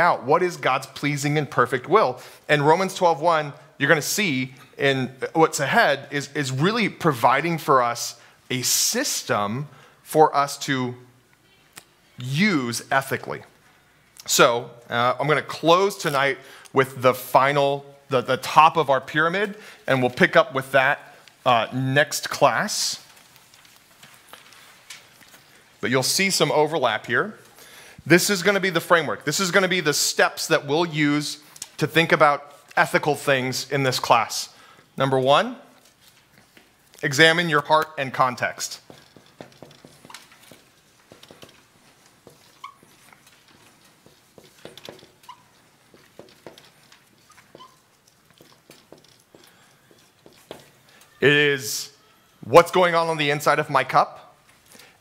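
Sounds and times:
marker scratching on whiteboard: 0:38.8 - 0:50.8
marker tip squeaking: 0:42.2 - 0:51.2.

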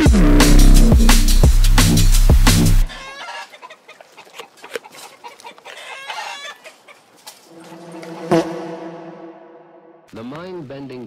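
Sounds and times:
chicken clucking: 0:02.9 - 0:08.4.

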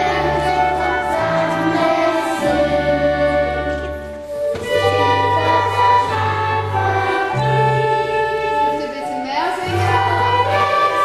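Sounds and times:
children's choir singing: 0:00.0 - 0:11.0
violin and flute: 0:00.0 - 0:11.0.

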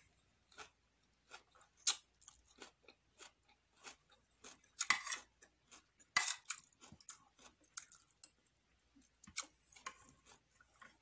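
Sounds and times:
person chewing food: 0:00.0 - 0:11.0.

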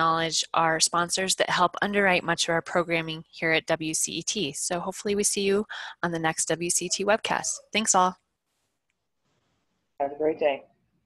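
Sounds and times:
person speaking: 0:10.0 - 0:10.7.

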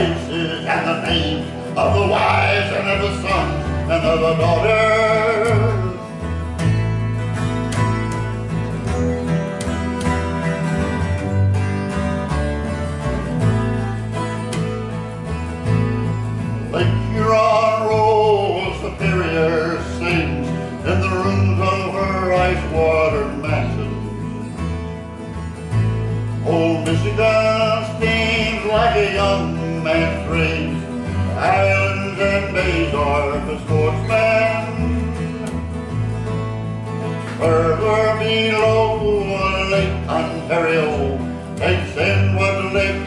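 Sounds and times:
acoustic guitar: 0:00.0 - 0:43.0
upright bass plucking: 0:00.0 - 0:43.0.

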